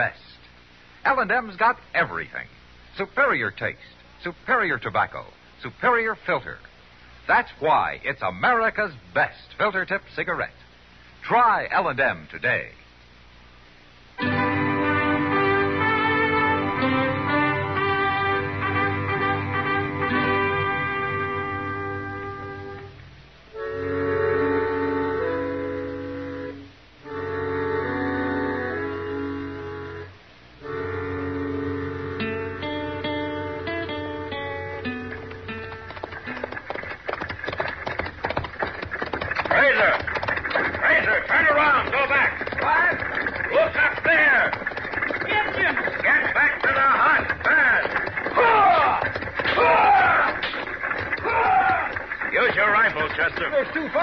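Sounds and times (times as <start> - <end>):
orchestral music bridge: 14.2 - 36.4.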